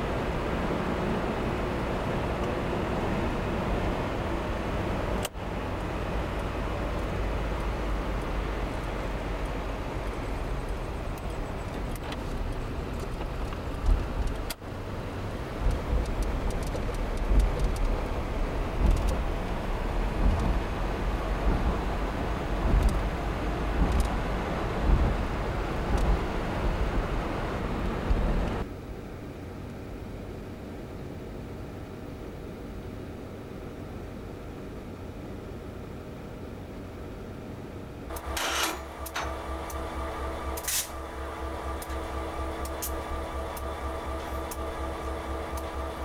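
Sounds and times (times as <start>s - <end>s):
car road and engine rumble: 0.0s - 46.0s.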